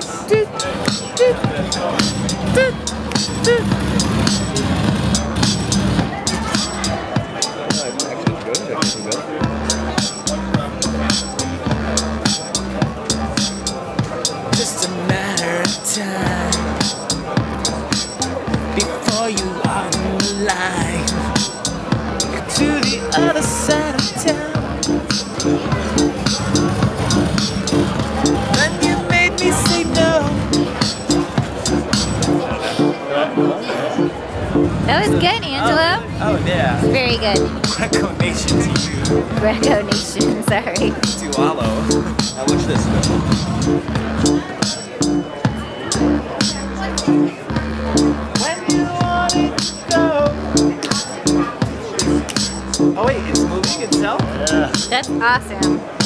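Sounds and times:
synth melody notes: 0.0 - 56.0
electronic drum beat: 0.2 - 32.5, 34.6 - 56.0
synth bass line: 1.2 - 7.1, 19.6 - 56.0.

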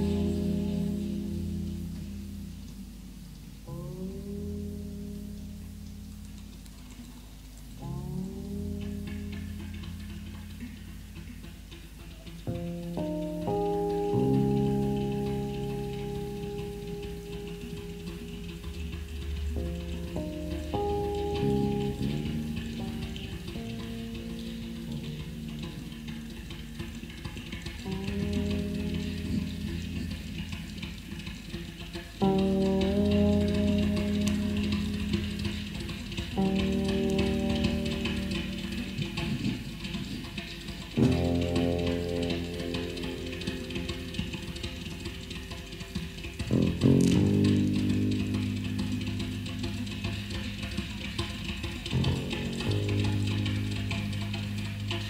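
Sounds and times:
low bass guitar notes: 0.0 - 55.0
steady hiss: 0.0 - 55.0.

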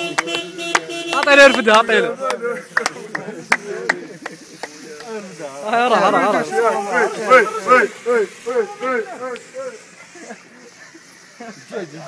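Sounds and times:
rhythmic hand clapping: 0.0 - 5.3
group chant: 5.6 - 9.9.

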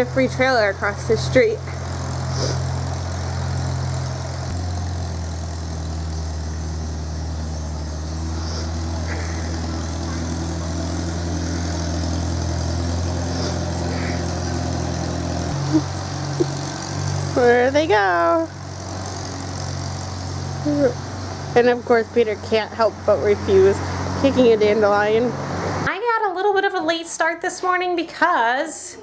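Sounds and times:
tractor engine idling: 0.0 - 25.3.

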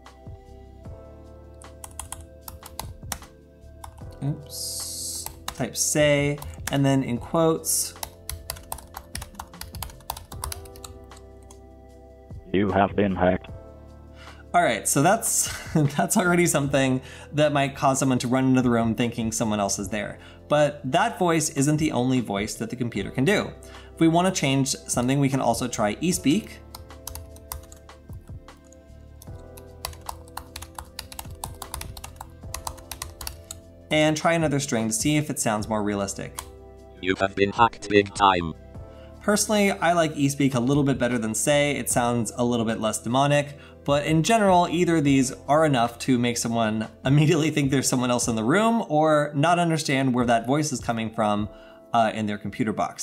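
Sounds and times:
background music with held notes: 0.0 - 53.0
fast typing on computer keyboard: 1.8 - 3.0, 6.4 - 6.8, 8.0 - 10.9, 26.8 - 27.8, 29.6 - 33.6.

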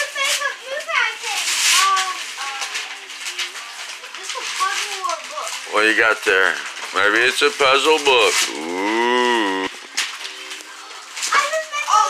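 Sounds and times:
wrapping paper tearing and crinkling: 0.1 - 8.7.

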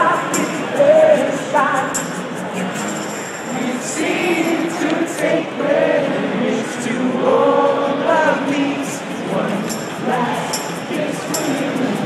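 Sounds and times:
acoustic guitars strummed: 0.0 - 12.0
crowd singing: 0.0 - 12.0.

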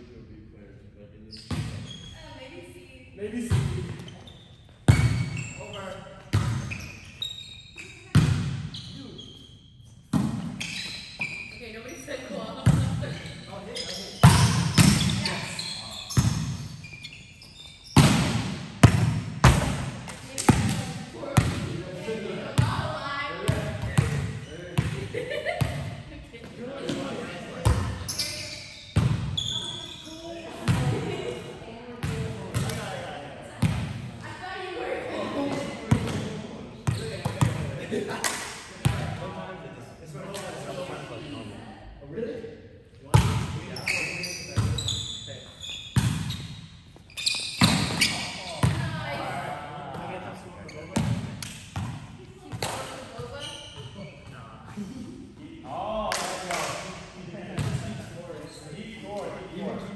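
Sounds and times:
volleyball slaps echoing: 10.1 - 10.6, 14.2 - 15.2, 17.9 - 21.8, 30.6 - 31.2, 32.0 - 33.0, 47.6 - 48.9, 51.0 - 53.0
players' voices: 10.2 - 16.7, 17.6 - 45.8, 47.6 - 59.9.

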